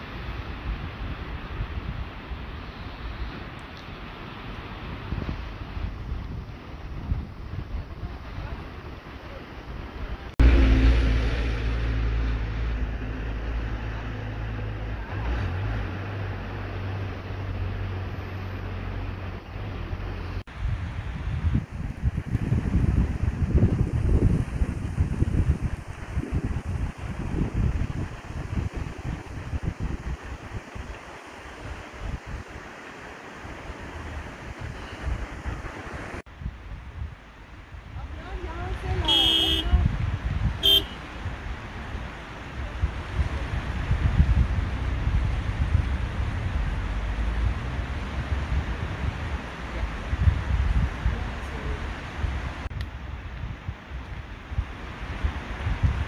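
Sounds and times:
wind buffeting microphone: 0.0 - 56.0
horn blasts: 39.0 - 39.9, 40.6 - 41.0.

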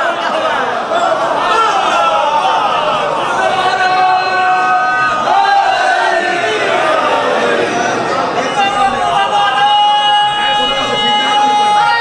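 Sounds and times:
crowd voices: 0.0 - 12.0
man speaking over public address: 8.0 - 12.0.

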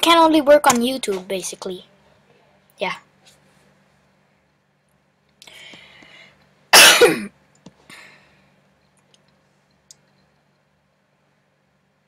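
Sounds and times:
person coughing: 6.7 - 7.4.

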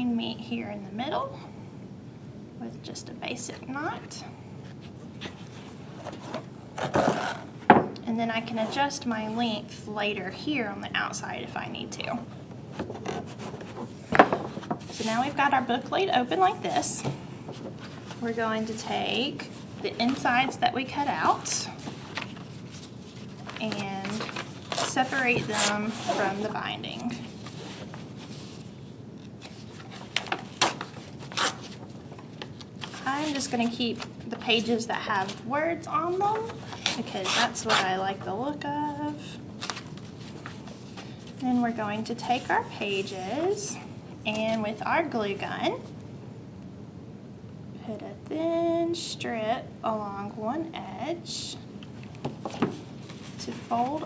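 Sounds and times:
book rubbing and sliding: 12.9 - 15.4, 21.2 - 28.8
paper rustling: 21.2 - 34.6.

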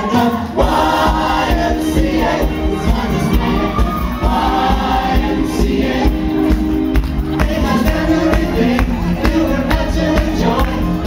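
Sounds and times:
choir singing upbeat song: 0.0 - 11.0
music with steady beat: 0.1 - 11.0.

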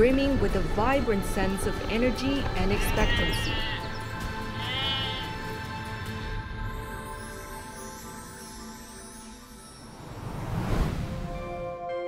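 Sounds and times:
background music: 0.0 - 12.0
sheep bleating: 2.7 - 5.6.

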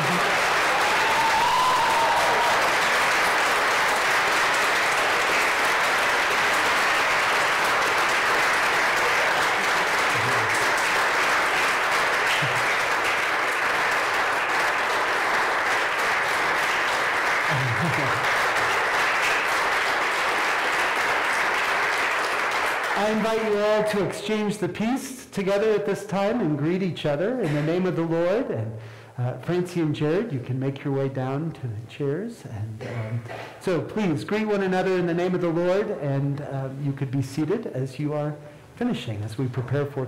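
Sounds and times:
congregation applauding: 0.0 - 24.5.

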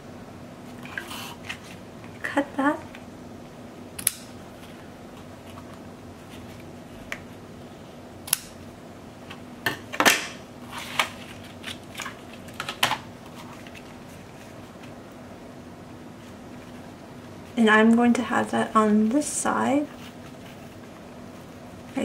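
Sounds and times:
paper rustling: 10.7 - 15.0, 19.8 - 22.0.

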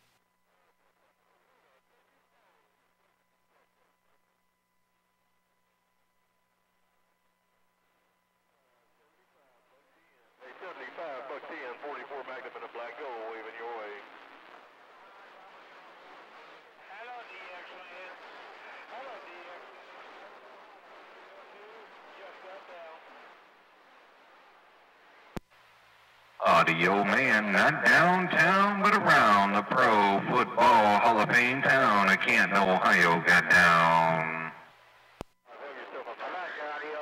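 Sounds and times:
voices over radio speaker: 9.0 - 23.4, 26.4 - 34.7, 35.5 - 37.0.

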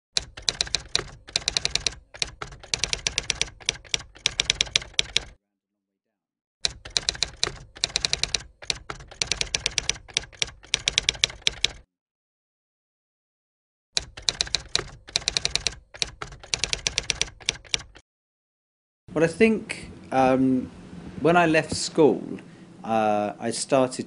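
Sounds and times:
typewriter keys typing: 0.1 - 5.4, 6.6 - 11.9, 14.0 - 18.0.

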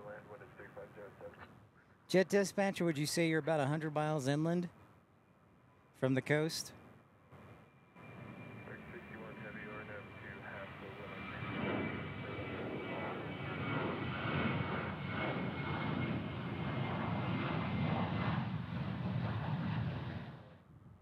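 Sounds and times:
high engine whine: 7.2 - 20.6
jet engines roaring: 7.4 - 20.6.

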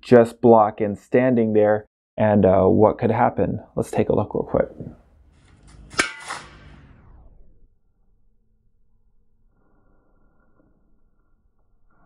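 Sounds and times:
sharp metallic hits: 5.6 - 7.1.

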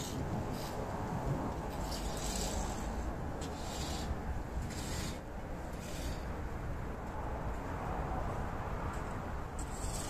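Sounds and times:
wind blowing over microphone: 0.0 - 10.0.

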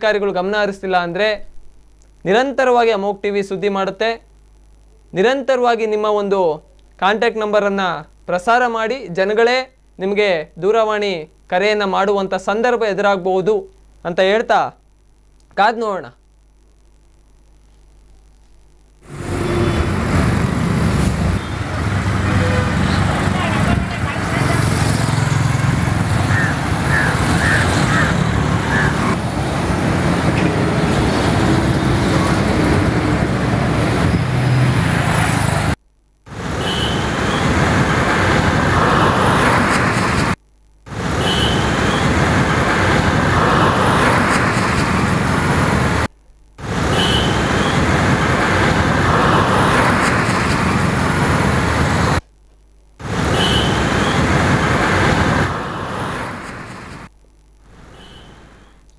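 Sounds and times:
traffic passing on road: 19.1 - 35.8, 36.4 - 52.2, 53.0 - 57.1.

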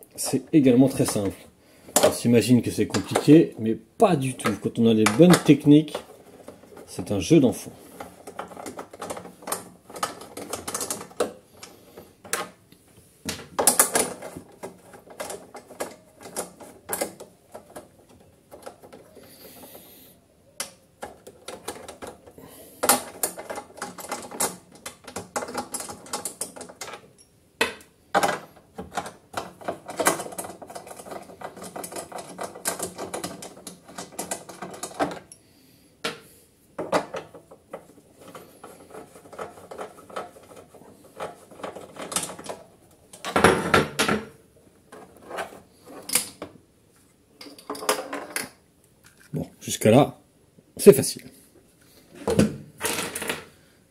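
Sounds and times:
bolts and plastic housing clattering: 0.1 - 12.6, 13.3 - 19.8, 20.6 - 35.4, 36.8 - 46.6.

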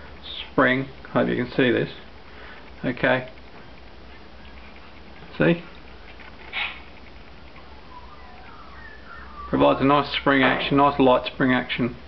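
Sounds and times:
low outdoor rumble: 0.0 - 12.0
faint whistled bird calls: 7.6 - 9.8.

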